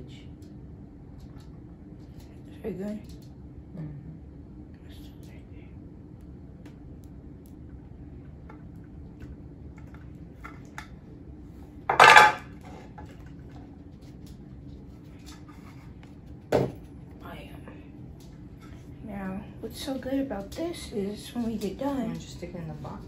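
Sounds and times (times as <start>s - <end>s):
metal clatter: 11.9s - 12.5s.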